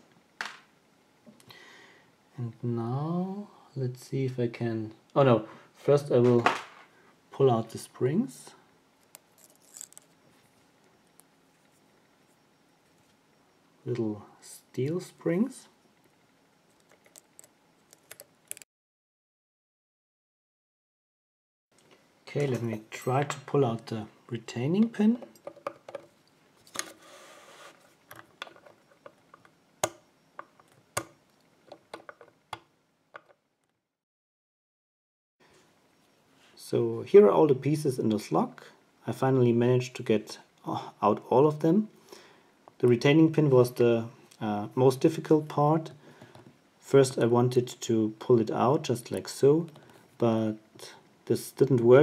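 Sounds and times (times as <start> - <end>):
pick scratching in lock: 9.2 - 10.2.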